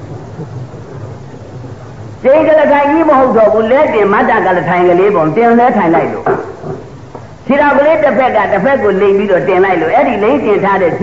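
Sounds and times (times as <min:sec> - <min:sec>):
background hiss: 0:00.0 - 0:11.0
low hum: 0:00.0 - 0:11.0.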